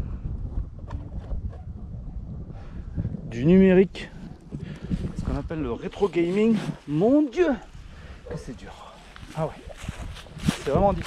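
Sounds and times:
wind rumble on microphone: 0.0 - 11.0.

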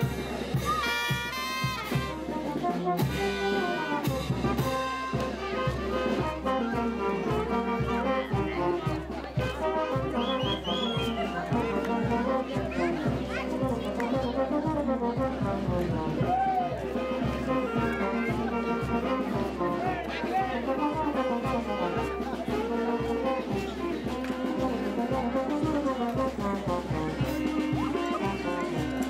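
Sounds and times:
brass band dance music: 0.0 - 29.0.

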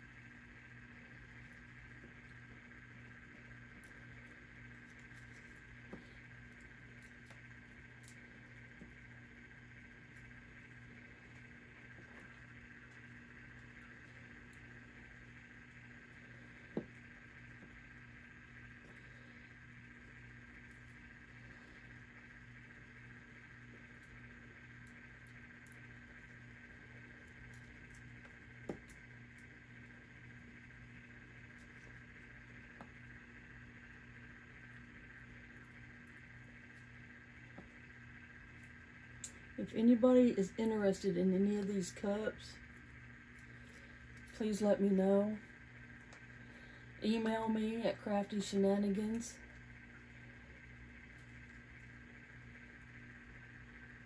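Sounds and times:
electric motor hum: 0.0 - 54.0.

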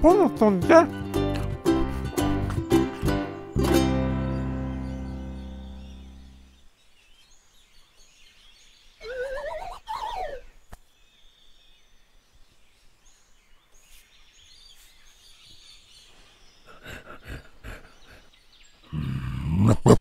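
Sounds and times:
faint outdoor bush ambience: 0.0 - 20.0
bird warbling call: 9.0 - 10.6.

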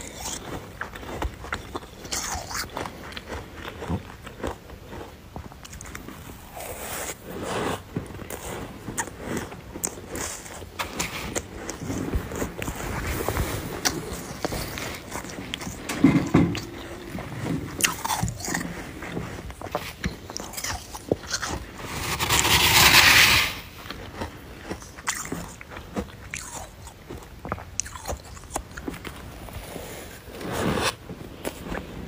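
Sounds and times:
chewing crunchy frost: 0.0 - 22.6, 23.5 - 32.0.

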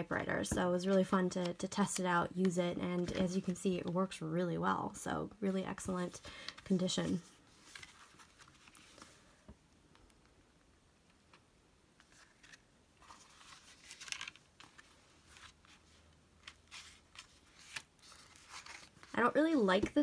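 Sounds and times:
paper pages rustling and tapping: 2.8 - 4.1, 6.5 - 9.2, 12.0 - 20.0.

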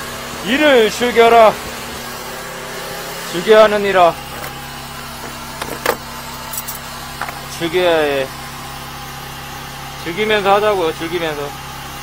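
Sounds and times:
idling engine hum: 0.0 - 12.0.

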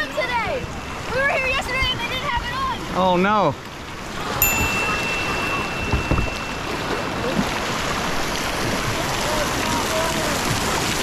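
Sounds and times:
whitewater rushing: 0.0 - 11.0
thin high tone: 4.4 - 8.2.

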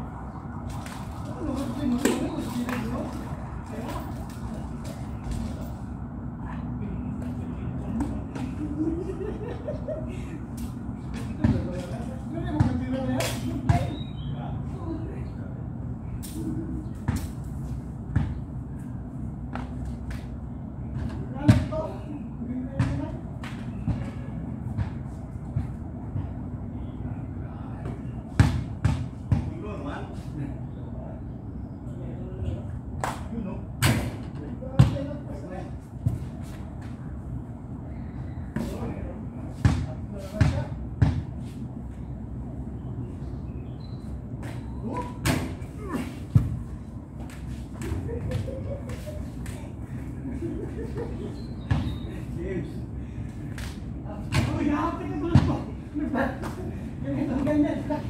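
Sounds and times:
men chattering: 47.8 - 58.0.

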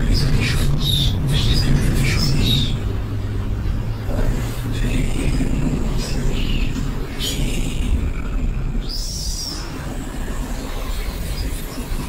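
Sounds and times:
low synth rumble: 0.0 - 12.0.

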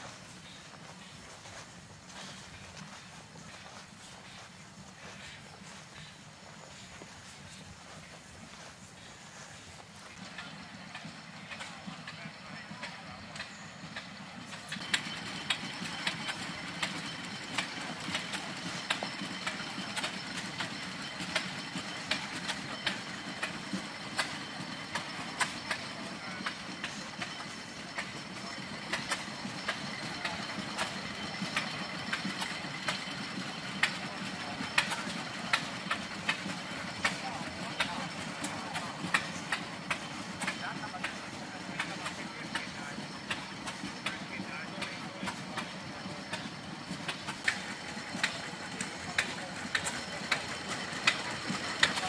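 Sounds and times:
engine running: 0.0 - 52.0
indistinct voices: 2.1 - 52.0.

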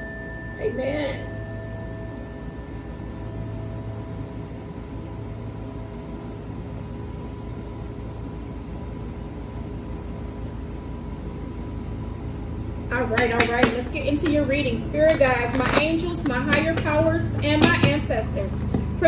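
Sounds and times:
singing bowl ringing: 0.0 - 6.8.

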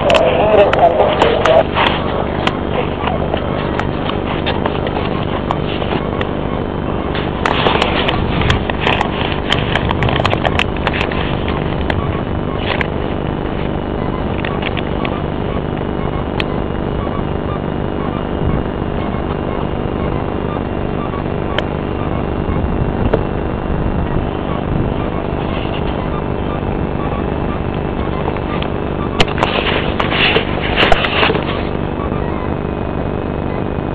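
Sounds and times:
rushing air noise: 0.0 - 14.4
sharp clicks: 0.0 - 17.6, 20.0 - 22.1, 27.1 - 31.7
aircraft engine drone: 0.0 - 33.9.

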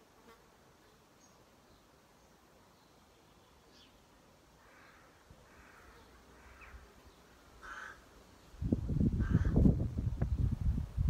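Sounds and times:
faint insect buzz: 0.0 - 8.6.

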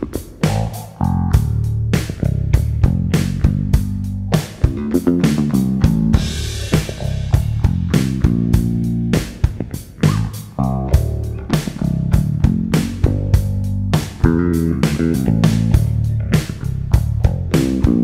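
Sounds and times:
electric bass plucked notes: 0.0 - 18.0.

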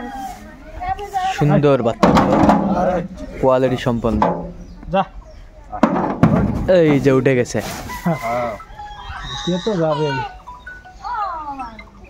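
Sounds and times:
people's voices: 0.0 - 12.0
farm animal bleating: 8.9 - 10.4.

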